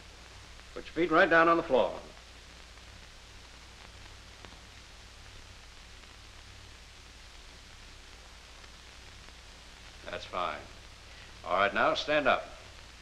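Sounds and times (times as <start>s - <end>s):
film soundtrack hiss and hum: 0.0s - 13.0s
faint clicks: 2.1s - 11.5s.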